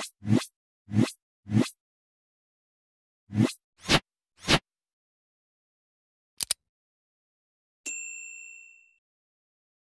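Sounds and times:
high bell ding: 0:07.8 - 0:09.0.

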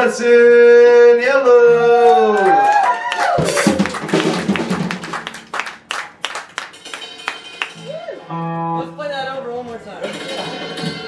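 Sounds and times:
audience applauding: 0:02.1 - 0:08.1.

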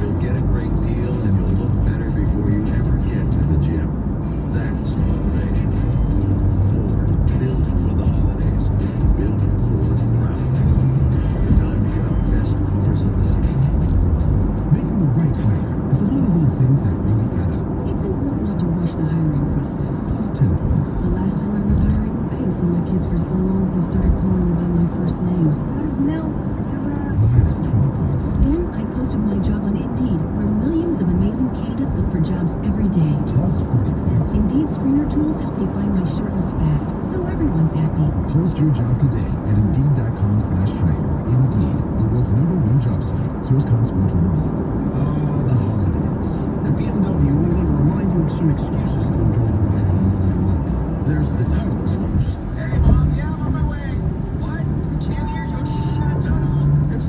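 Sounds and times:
car radio playing music: 0:00.0 - 0:57.0
tyre and road noise: 0:00.0 - 0:57.0.

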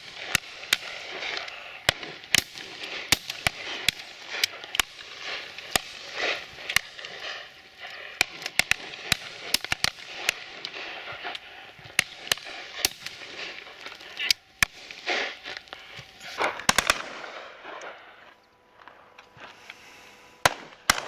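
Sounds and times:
shotguns firing: 0:00.0 - 0:15.6, 0:16.4 - 0:18.0, 0:20.4 - 0:21.0.

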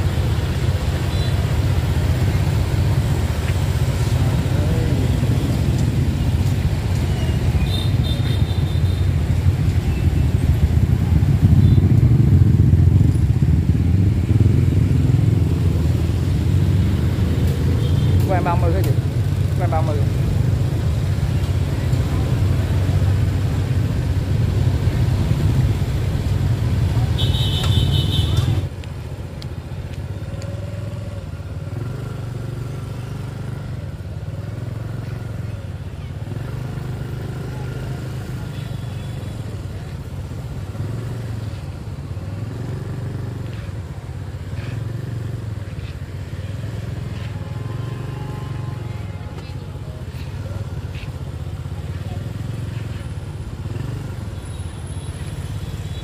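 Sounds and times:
motorbike engines running: 0:00.0 - 0:56.0
voices: 0:01.0 - 0:12.2, 0:34.3 - 0:56.0.

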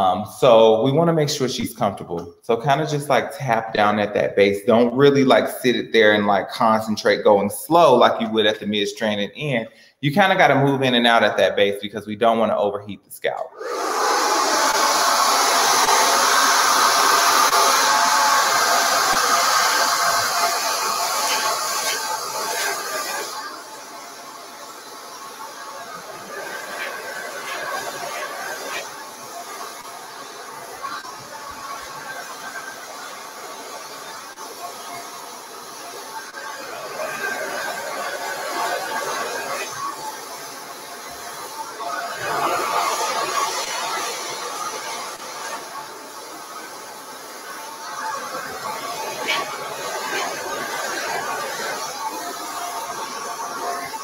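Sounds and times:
hair dryer blowing with whine: 0:13.5 - 0:54.0.

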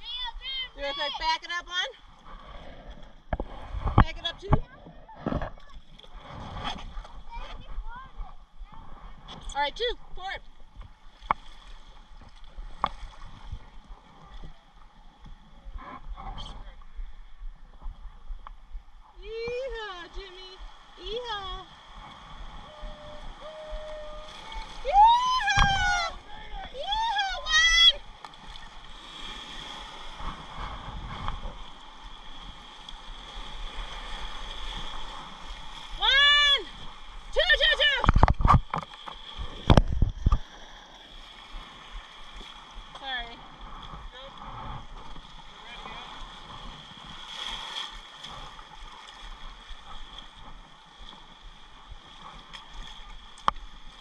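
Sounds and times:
river water rushing and splashing: 0:19.7 - 0:54.0
people whooping: 0:22.6 - 0:28.0.

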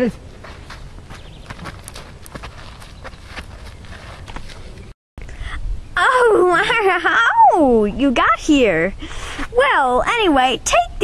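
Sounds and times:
footsteps on gravelly sand: 0:00.0 - 0:04.9.

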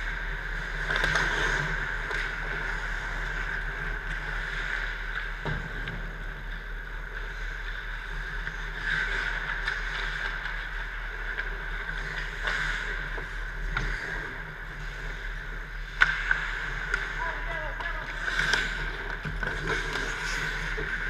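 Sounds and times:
skate blades scraping on ice: 0:07.0 - 0:21.0.

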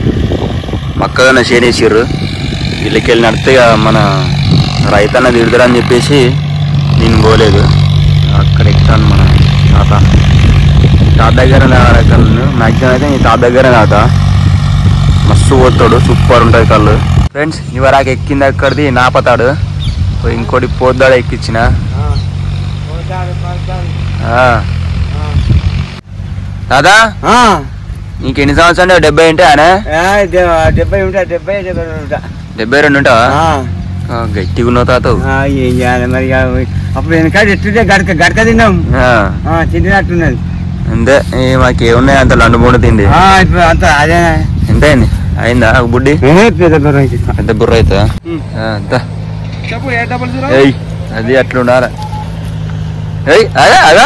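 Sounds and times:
engine humming: 0:00.0 - 0:54.0
man speaking: 0:02.8 - 0:10.2, 0:11.2 - 0:14.2, 0:15.2 - 0:19.6, 0:26.7 - 0:52.0.

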